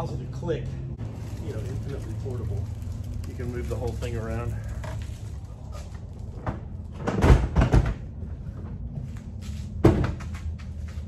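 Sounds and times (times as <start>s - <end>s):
plastic toolboxes thudding: 6.4s - 8.2s.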